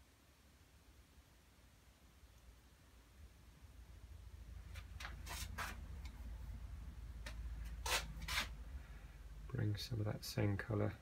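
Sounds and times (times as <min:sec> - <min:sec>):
brush scrubbing on surface: 0:05.2 - 0:05.9, 0:07.8 - 0:08.6.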